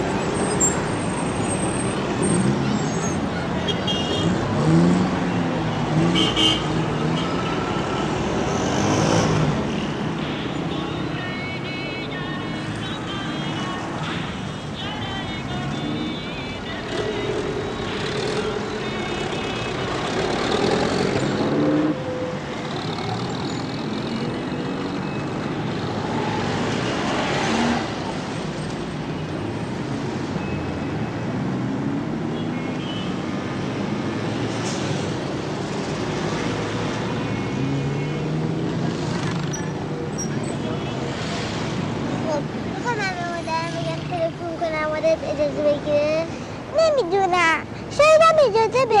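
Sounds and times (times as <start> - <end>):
car and truck engines: 0.0 - 49.0.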